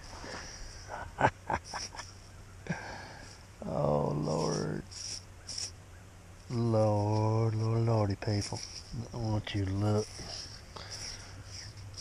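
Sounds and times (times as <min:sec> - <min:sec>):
man humming: 0:00.8 - 0:02.0.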